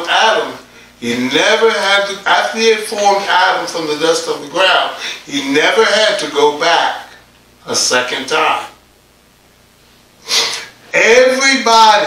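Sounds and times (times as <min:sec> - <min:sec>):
man speaking: 0:00.0 - 0:08.8, 0:10.9 - 0:12.0.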